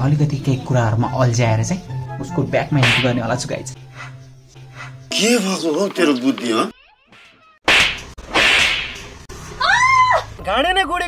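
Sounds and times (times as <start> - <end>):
loud smack: 2.8 - 3.2, 7.7 - 9.1.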